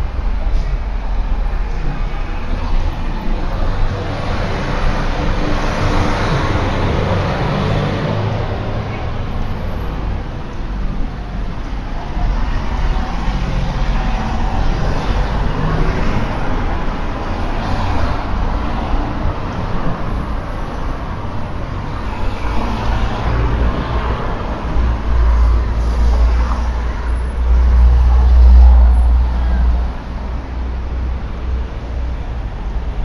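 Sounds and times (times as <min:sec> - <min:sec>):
deep traffic rumble: 0:00.0 - 0:33.0
vehicles passing: 0:00.0 - 0:33.0.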